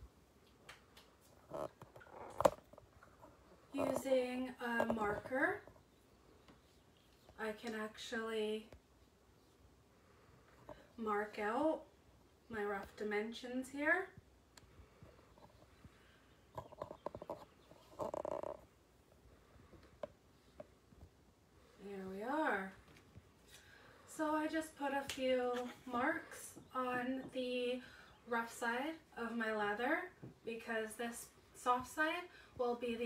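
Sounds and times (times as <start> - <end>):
marker squeaking on leather: 16.6 - 18.6.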